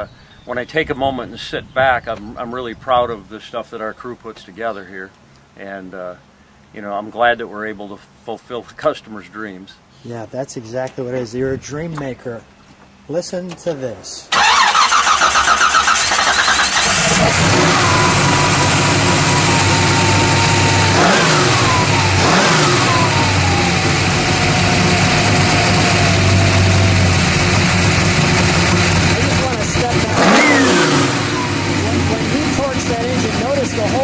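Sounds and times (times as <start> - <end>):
car engine idling: 14.3 - 34.0
engine revving: 14.3 - 34.0.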